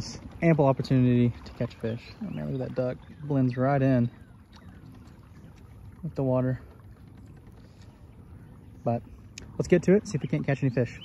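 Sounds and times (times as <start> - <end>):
faint water sounds: 0.0 - 11.0.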